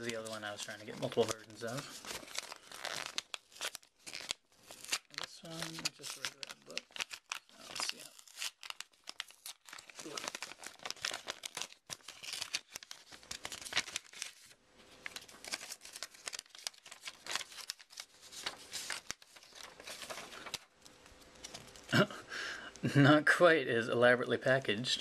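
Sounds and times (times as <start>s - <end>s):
paper crinkling and tearing: 0.0s - 22.1s.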